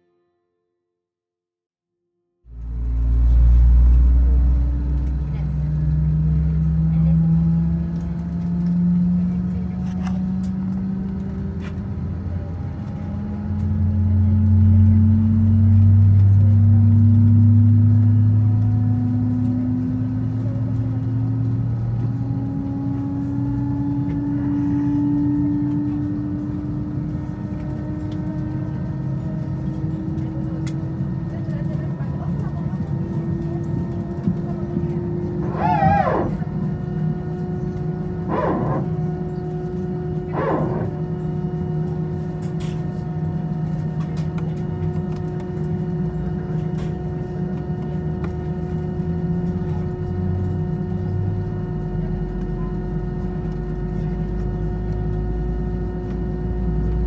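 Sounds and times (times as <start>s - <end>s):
jet engines spooling up: 33.4s - 43.0s.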